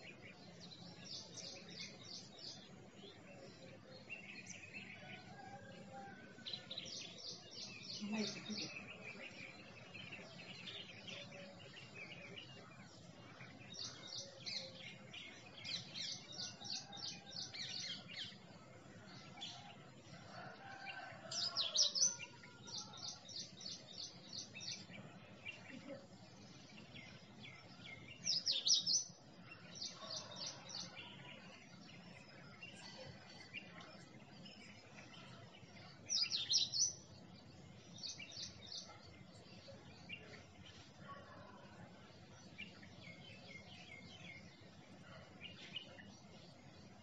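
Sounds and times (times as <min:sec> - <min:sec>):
small birds chirping: 0:00.0 - 0:47.0.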